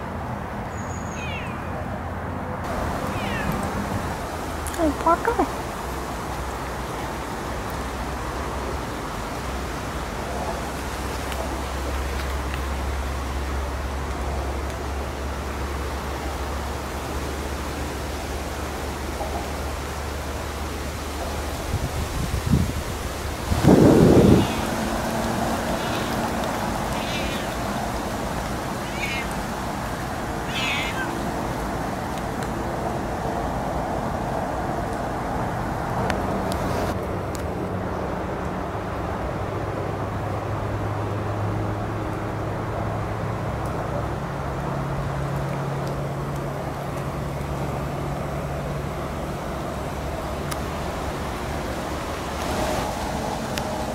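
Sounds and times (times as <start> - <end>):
cat meowing: 1.0 - 1.7, 3.0 - 3.8, 24.2 - 24.8, 25.6 - 27.8, 28.7 - 29.4, 30.4 - 31.2.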